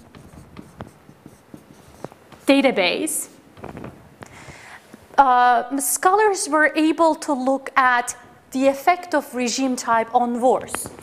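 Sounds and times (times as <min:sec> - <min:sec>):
pen scratching while writing: 0:00.0 - 0:02.5.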